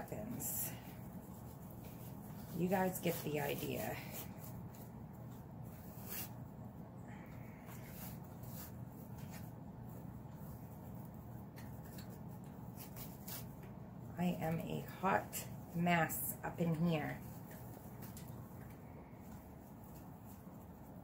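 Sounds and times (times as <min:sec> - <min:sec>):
fabric ribbon rustling: 0:00.0 - 0:06.6, 0:07.3 - 0:21.0
steady low hum: 0:00.0 - 0:21.0.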